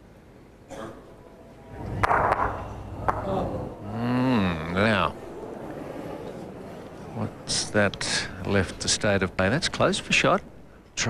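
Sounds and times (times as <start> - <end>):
crowd noise: 1.0 - 11.0.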